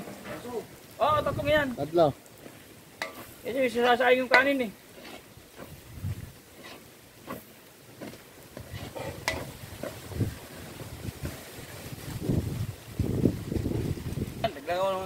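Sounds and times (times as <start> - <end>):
wind rumble on microphone: 1.0 - 1.7, 5.6 - 6.4, 8.6 - 15.0
metal spatula scraping a wok: 3.0 - 3.5, 4.2 - 7.6, 8.6 - 10.1.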